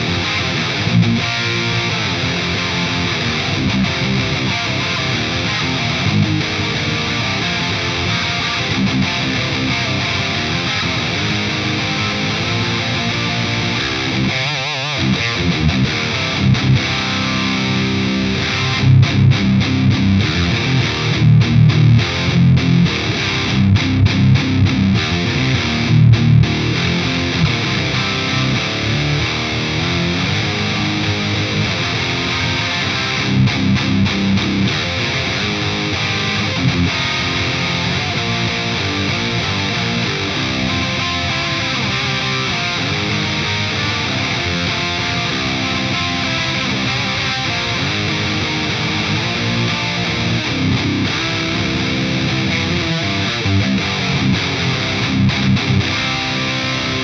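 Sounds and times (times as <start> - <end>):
distorted electric guitar riff: 0.0 - 57.0.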